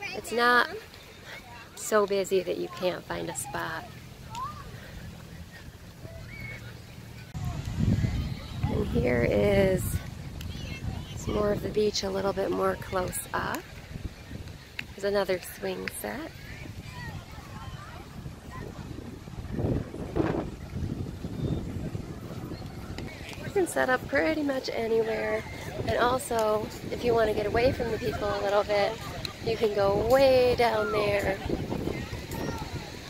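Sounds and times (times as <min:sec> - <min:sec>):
distant calls of people: 0:00.0 - 0:33.0
lake surf: 0:00.0 - 0:33.0
wind: 0:00.0 - 0:33.0.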